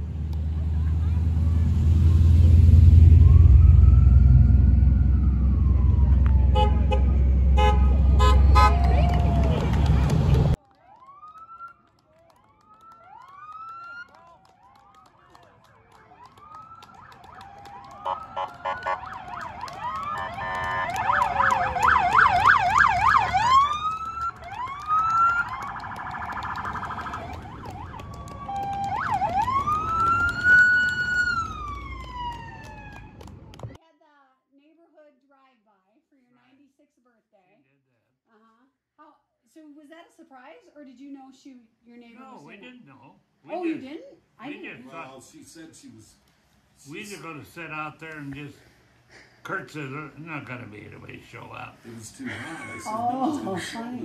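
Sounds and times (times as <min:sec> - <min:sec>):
vehicle engine rumble: 0:00.0 - 0:10.6, 0:12.6 - 0:33.8
police car sirens: 0:02.7 - 0:33.7
horn honks: 0:06.4 - 0:09.7, 0:18.0 - 0:19.4, 0:20.2 - 0:22.0.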